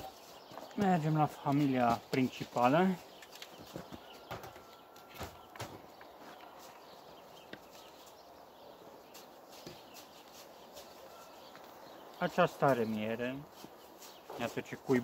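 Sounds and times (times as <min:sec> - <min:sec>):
faint knocks and rustles: 0:00.3 - 0:08.2, 0:09.1 - 0:11.8.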